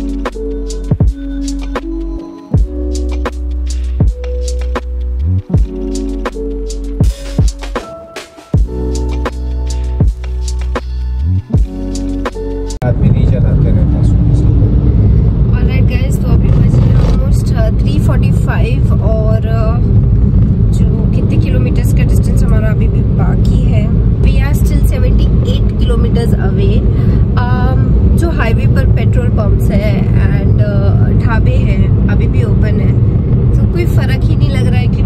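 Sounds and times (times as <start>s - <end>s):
car road and engine rumble: 0.0s - 35.0s
people talking: 12.8s - 14.4s, 15.6s - 19.8s, 20.7s - 33.0s, 33.6s - 35.0s.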